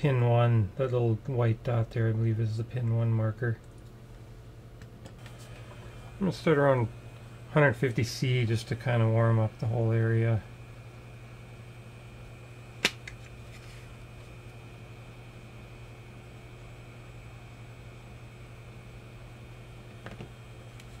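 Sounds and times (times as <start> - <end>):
hot air blower humming: 4.0 - 21.0.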